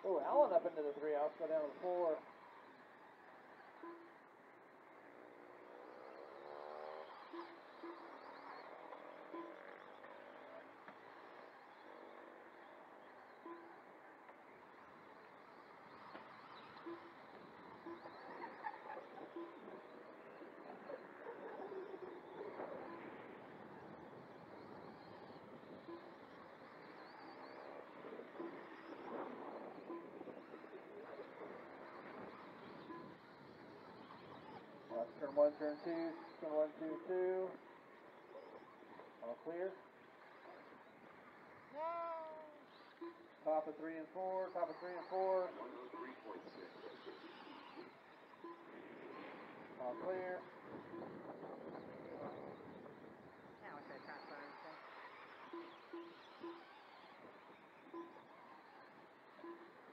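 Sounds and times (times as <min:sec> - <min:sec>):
faint electric motorcycle whine: 0:00.0 - 0:59.9
short steady tones: 0:13.0 - 0:23.2, 0:23.8 - 0:51.6, 0:53.9 - 0:59.9.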